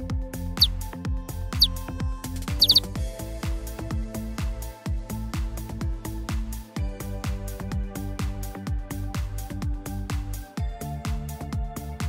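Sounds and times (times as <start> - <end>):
high falling chirps: 2.6 - 2.9.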